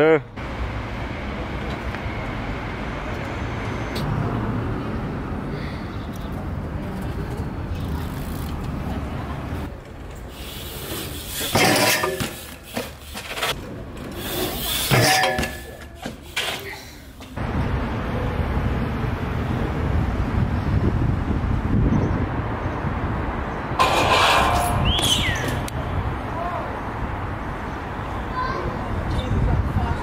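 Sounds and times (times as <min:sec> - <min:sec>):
bike pegs grinding metal handrail: 0:10.9 - 0:16.6, 0:23.8 - 0:25.7.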